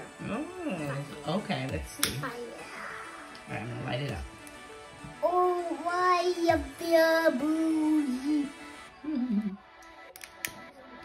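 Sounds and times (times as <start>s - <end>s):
lighter clicks: 2.0s - 2.3s.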